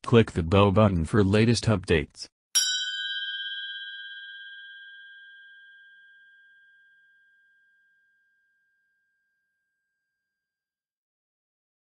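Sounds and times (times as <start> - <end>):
bell-like chime: 2.6 - 10.2.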